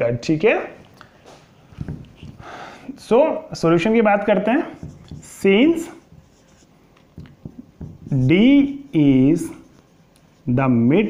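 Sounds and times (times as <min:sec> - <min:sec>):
marker writing on whiteboard: 0:01.6 - 0:02.6, 0:03.8 - 0:10.6.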